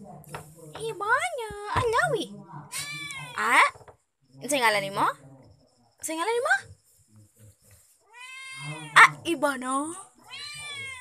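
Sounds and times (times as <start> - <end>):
cat meowing: 2.7 - 3.5, 8.0 - 9.2, 10.3 - 11.0.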